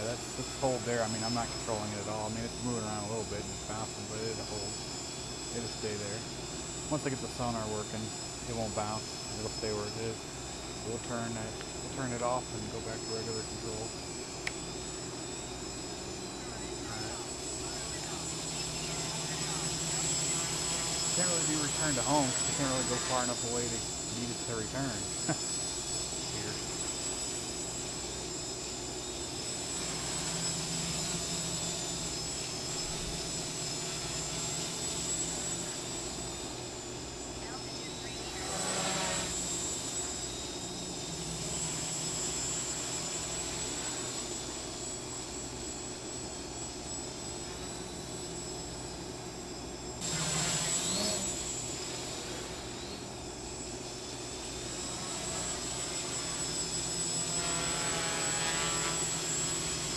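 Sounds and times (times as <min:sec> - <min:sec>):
quadcopter buzzing with high whine: 0:00.0 - 0:59.9.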